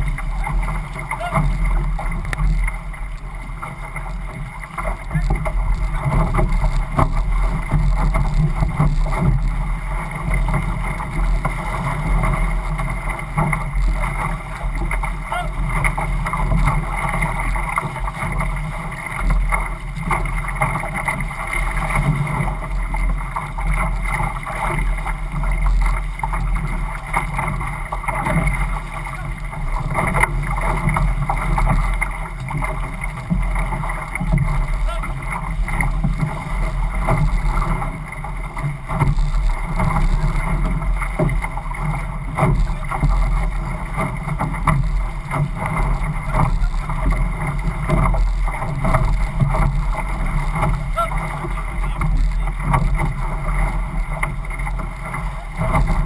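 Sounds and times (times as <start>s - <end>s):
paddles digging in: 0.0s - 56.0s
water rushing past a hull: 0.0s - 56.0s.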